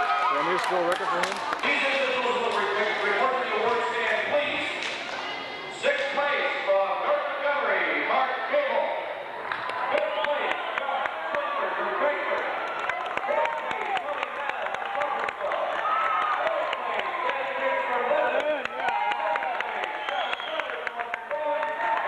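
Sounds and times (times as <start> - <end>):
crowd babble: 0.0 - 22.0.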